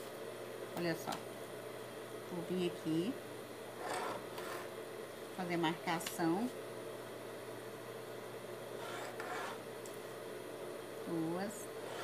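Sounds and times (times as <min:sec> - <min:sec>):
pen scratching on paper: 0:08.8 - 0:09.6.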